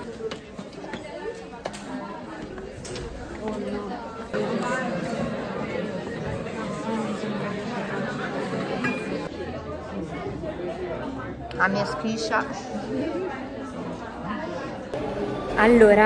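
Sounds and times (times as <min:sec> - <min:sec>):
babble of many voices: 0:00.0 - 0:16.0.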